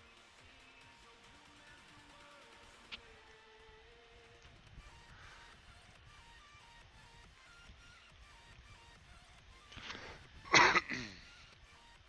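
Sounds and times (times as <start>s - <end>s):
man clearing throat: 10.5s - 11.3s.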